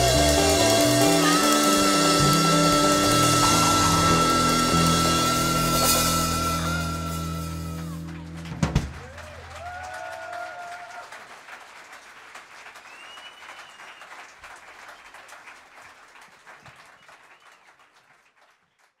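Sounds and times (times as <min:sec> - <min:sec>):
cheers: 0:00.0 - 0:15.5
audience applauding: 0:00.0 - 0:19.0
high whistle: 0:01.0 - 0:08.0, 0:12.9 - 0:14.1.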